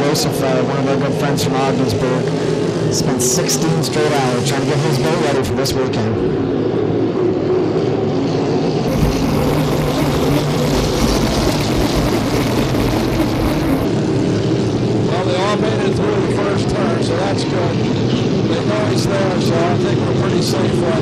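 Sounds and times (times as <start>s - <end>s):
racing boat engines droning: 8.9s - 13.9s
wind and water spray: 8.9s - 13.9s.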